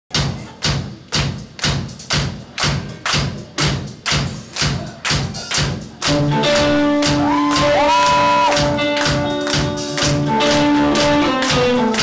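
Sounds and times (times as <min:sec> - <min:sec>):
drum kit playing steady beat: 0:00.1 - 0:12.0.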